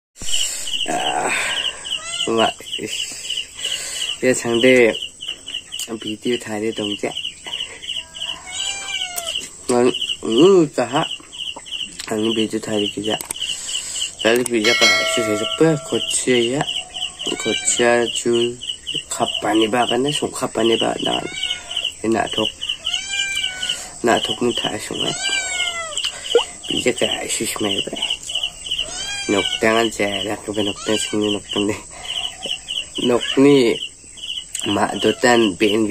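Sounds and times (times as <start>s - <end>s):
cat meowing: 2.0s - 2.3s, 8.0s - 9.4s, 17.2s - 17.9s, 21.0s - 21.6s, 22.8s - 23.8s, 25.0s - 26.0s, 28.8s - 29.6s, 30.7s - 31.4s
man talking: 14.3s - 16.7s
thin high whine: 14.6s - 16.6s
high-pitched chirping: 14.6s - 17.6s
small animal chirping: 25.1s - 26.8s.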